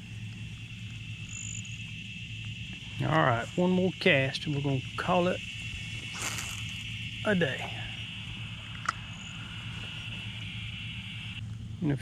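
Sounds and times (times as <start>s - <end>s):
high-pitched insect chorus: 0.0s - 12.0s
low steady hum: 0.0s - 12.0s.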